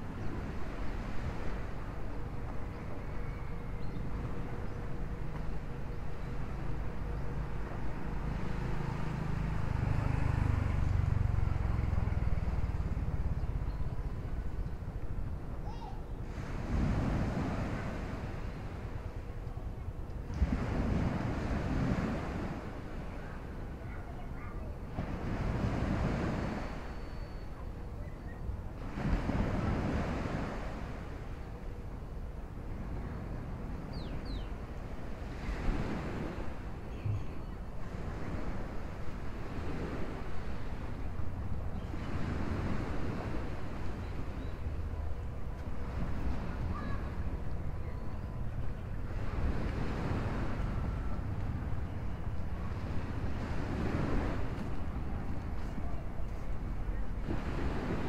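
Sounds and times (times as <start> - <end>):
wind rumble on microphone: 0.0 - 24.0, 24.7 - 58.0
small waves breaking on beach: 7.4 - 13.3, 15.6 - 19.1, 20.3 - 27.6, 28.7 - 31.4, 34.6 - 47.4, 48.9 - 51.8, 52.5 - 58.0.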